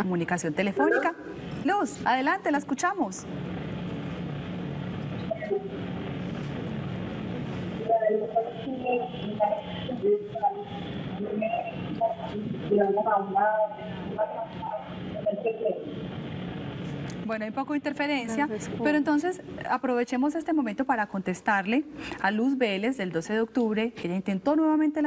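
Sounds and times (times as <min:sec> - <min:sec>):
telephone line hiss and hum: 0:00.3 - 0:19.5
voice over phone line: 0:00.8 - 0:01.2, 0:07.8 - 0:15.9.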